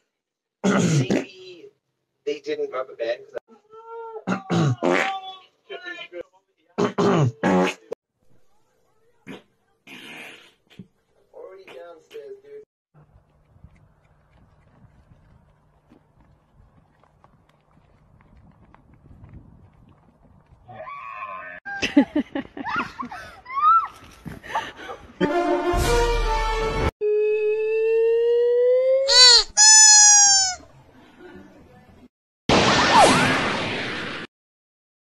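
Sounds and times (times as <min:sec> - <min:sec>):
man farting loudly: 0:06.8 - 0:08.0, 0:09.2 - 0:10.9
drawn-out animal call: 0:29.1 - 0:30.6.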